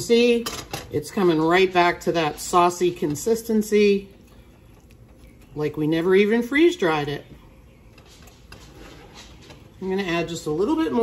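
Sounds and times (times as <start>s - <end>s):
woman speaking: 0.0s - 4.1s, 5.6s - 7.4s, 9.8s - 11.0s
spatula stirring thick mix in skillet: 1.2s - 10.9s.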